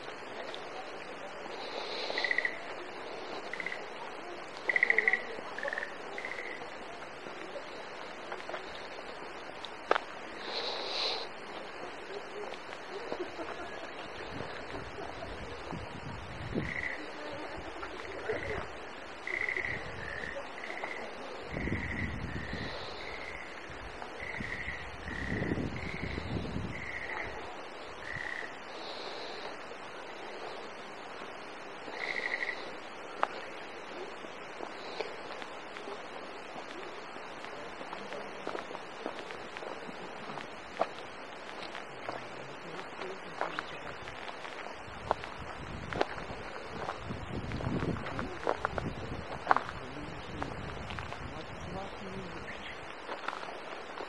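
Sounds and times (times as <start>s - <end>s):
outdoor background hiss: 0.0s - 54.0s
frogs calling: 0.2s - 7.5s, 16.5s - 30.8s, 31.8s - 37.5s.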